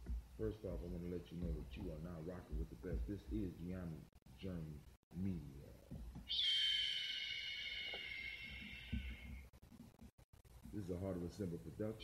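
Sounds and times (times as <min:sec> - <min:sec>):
high shrill tone: 0:06.3 - 0:09.5.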